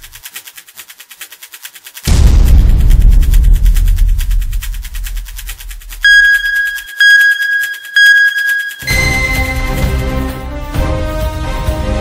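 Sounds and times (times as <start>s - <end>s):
rapid ticking: 0.0s - 9.9s
electronic countdown beeps: 6.0s - 10.0s.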